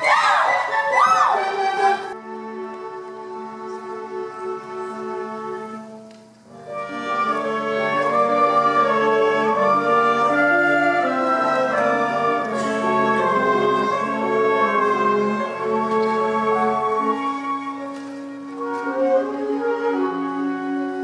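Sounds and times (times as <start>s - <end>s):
orchestra playing underscore: 0.0s - 21.0s.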